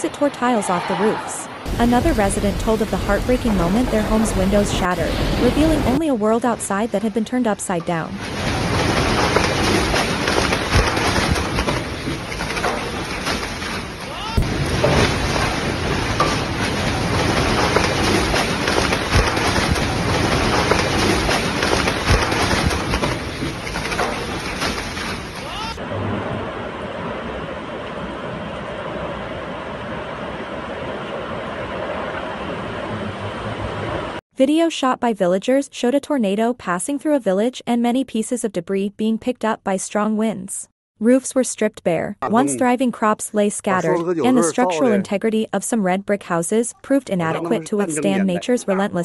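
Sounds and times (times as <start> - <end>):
flying debris knocking: 8.2 - 25.5
heavy rain: 8.2 - 27.8.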